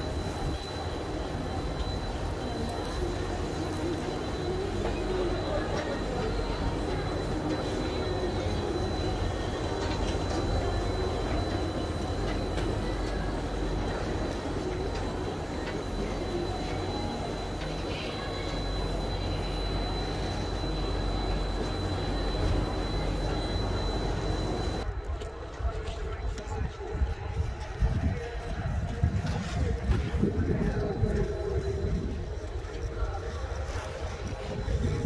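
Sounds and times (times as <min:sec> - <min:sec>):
thin high whine: 0:00.0 - 0:25.0
chairlift mechanical rumble: 0:00.0 - 0:35.0.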